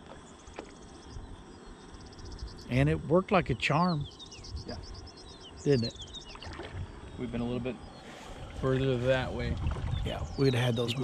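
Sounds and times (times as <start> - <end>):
faint cricket chirping: 0.0 - 11.0
low rumble: 6.6 - 10.8.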